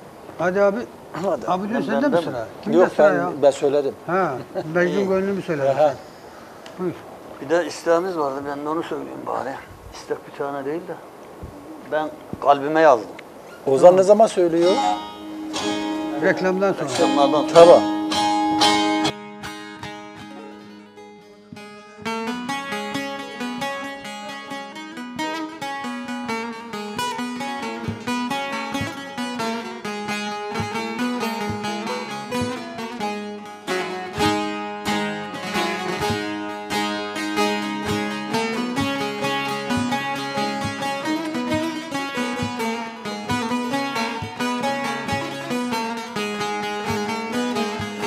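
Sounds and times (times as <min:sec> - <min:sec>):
long-necked lute folk melody: 0:00.0 - 0:09.6, 0:10.7 - 0:48.0.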